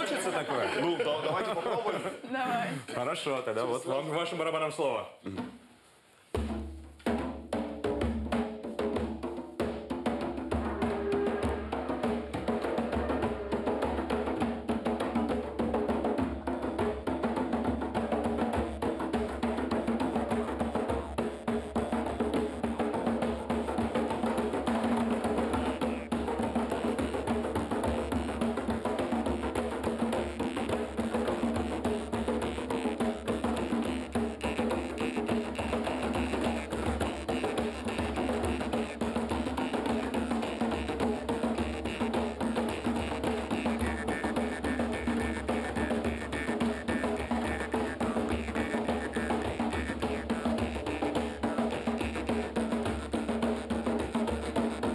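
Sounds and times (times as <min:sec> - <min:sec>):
hand drums ensemble playing: 0:00.0 - 0:01.8, 0:06.3 - 0:54.9.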